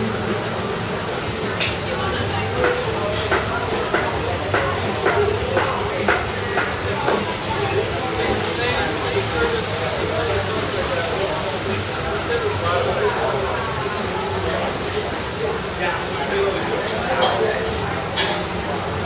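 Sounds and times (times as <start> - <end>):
chatter of voices: 0.0 - 19.0.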